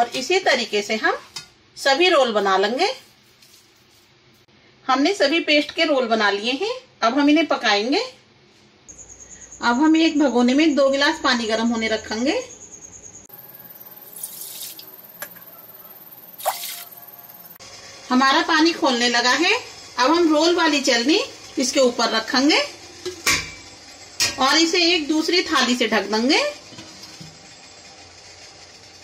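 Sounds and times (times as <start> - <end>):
water boiling in a pot: 13.3 - 29.0
water pouring into metal pot: 14.2 - 14.9.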